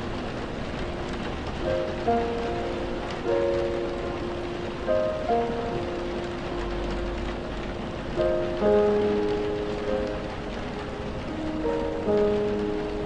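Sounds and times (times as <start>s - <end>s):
slow piano music: 0.0s - 13.0s
steady rain hiss: 0.0s - 13.0s.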